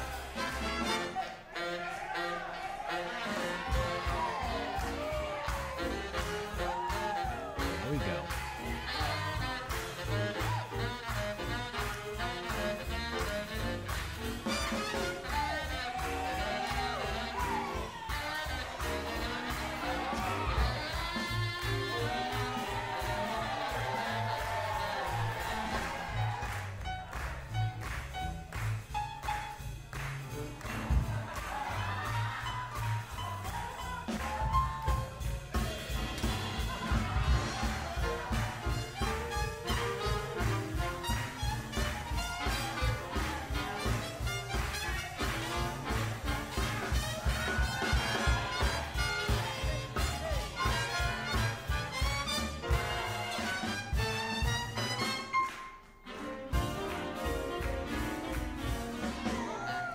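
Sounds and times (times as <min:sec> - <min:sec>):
upright bass: 0:00.0 - 0:55.4, 0:56.2 - 0:59.9
drums: 0:00.0 - 0:59.9
horn lines: 0:00.0 - 0:59.9
swing jazz band playing: 0:00.0 - 0:59.9.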